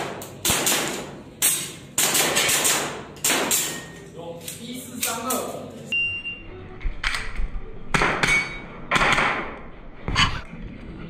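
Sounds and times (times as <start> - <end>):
pistol shots ringing in a room: 0.0 - 4.1, 7.0 - 9.6.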